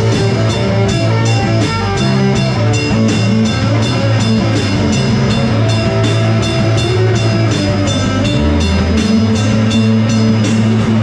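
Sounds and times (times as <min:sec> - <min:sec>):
distorted electric guitars: 0:00.0 - 0:11.0
drum kit: 0:00.0 - 0:11.0.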